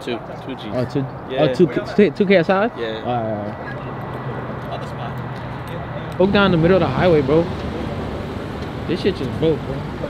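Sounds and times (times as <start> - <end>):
car engines idling: 3.1 - 10.0.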